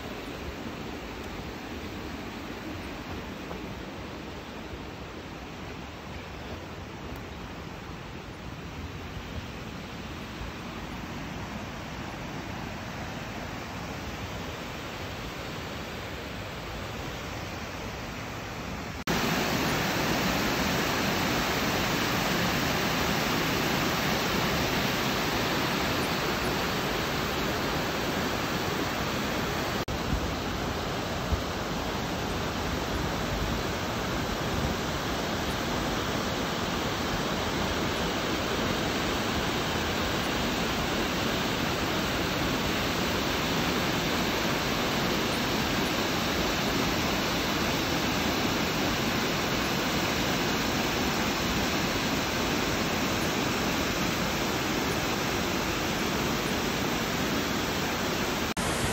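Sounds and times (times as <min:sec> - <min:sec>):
waterfall rushing: 0:07.6 - 0:58.9.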